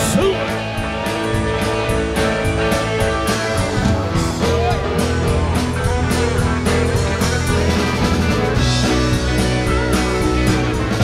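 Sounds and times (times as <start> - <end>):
bass: 0.0 - 11.0
drums: 0.0 - 11.0
electric guitar bending notes: 0.0 - 11.0.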